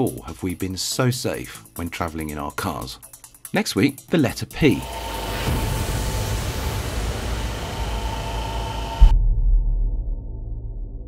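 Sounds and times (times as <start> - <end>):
steady rushing noise: 4.8 - 9.1.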